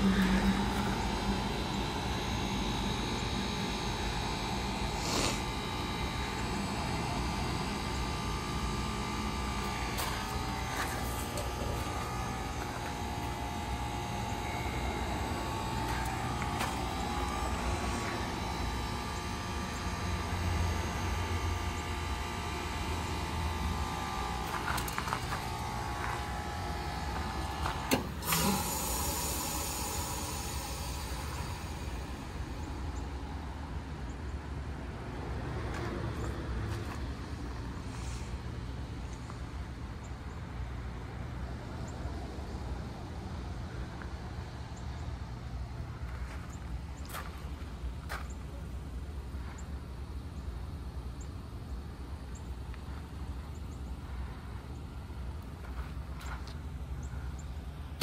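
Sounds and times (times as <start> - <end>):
heat pump humming: 0.0 - 58.0.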